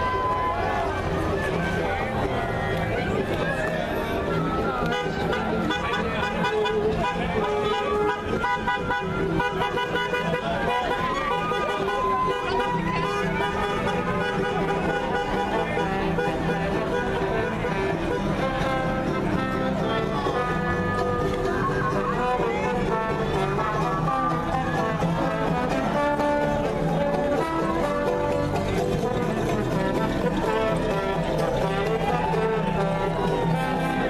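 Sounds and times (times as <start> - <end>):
band music playing: 0.0 - 34.0
crowd voices: 0.0 - 34.0.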